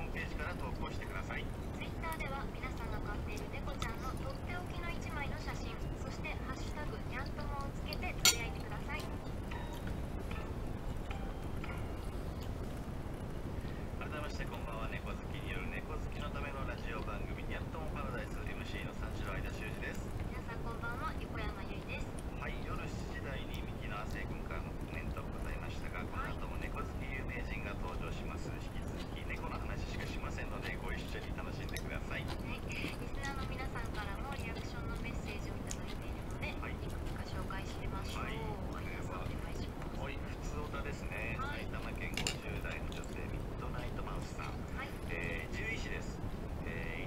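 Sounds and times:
low background rumble: 0:00.0 - 0:47.0
steady low hum: 0:00.0 - 0:47.0
man talking quietly: 0:14.0 - 0:20.1, 0:22.4 - 0:33.4, 0:38.0 - 0:47.0.

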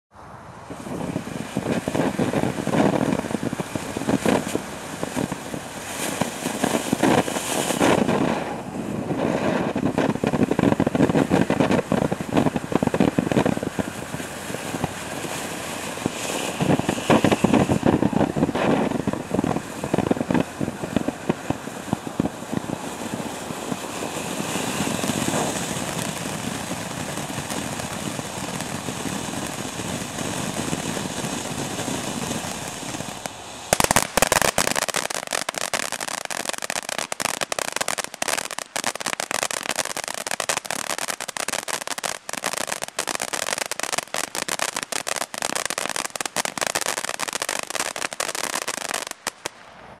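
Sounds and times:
firework rapid crackling: 0:00.7 - 0:50.0
firework sparks hissing: 0:00.7 - 0:50.0.

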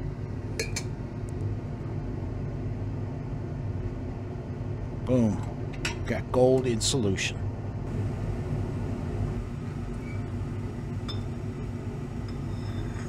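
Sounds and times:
steady low hum: 0:00.0 - 0:13.0
glassware clinking: 0:11.0 - 0:11.3.

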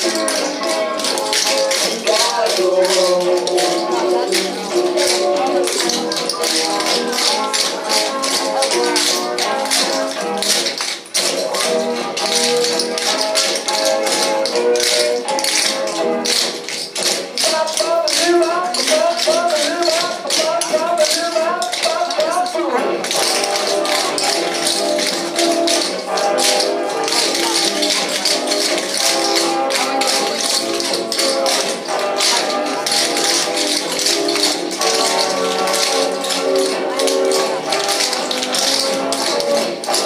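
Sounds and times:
swing music: 0:00.0 - 0:40.0
tap shoes on wooden floor: 0:00.0 - 0:40.0.

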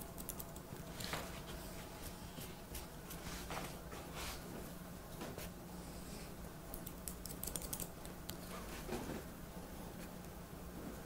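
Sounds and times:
scissors snipping wet hair: 0:06.7 - 0:08.4.

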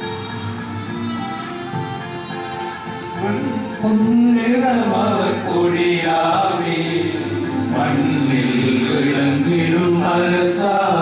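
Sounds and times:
men singing a hymn in unison: 0:03.8 - 0:11.0.

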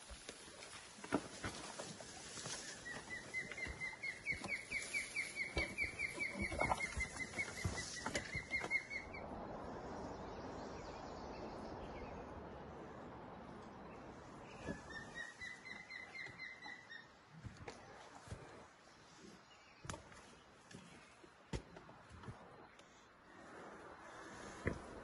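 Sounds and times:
footsteps pushing through brush: 0:00.0 - 0:08.9.

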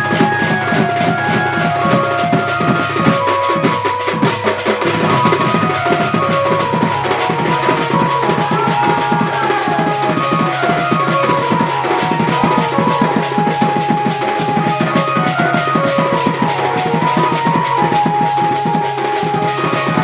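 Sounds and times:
barrel drum beaten with stick: 0:00.0 - 0:20.0
high sliding melody: 0:00.0 - 0:20.0.

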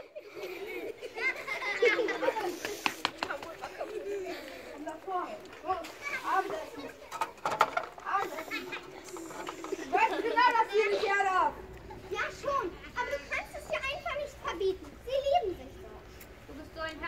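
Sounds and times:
children chattering and calling out: 0:00.0 - 0:17.0.

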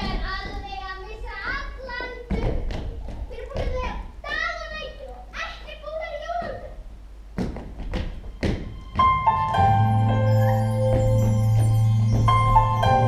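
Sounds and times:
children speaking: 0:00.0 - 0:06.8
thuds: 0:07.4 - 0:09.2.

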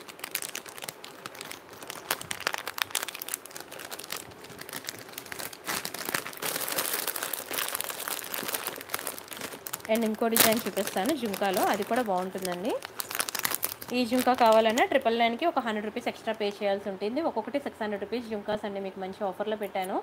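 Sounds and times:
plastic packaging crinkling: 0:00.0 - 0:16.5.

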